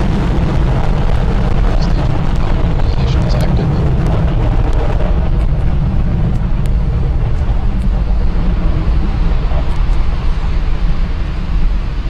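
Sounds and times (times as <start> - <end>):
rocket engines rumbling: 0.0 - 12.0.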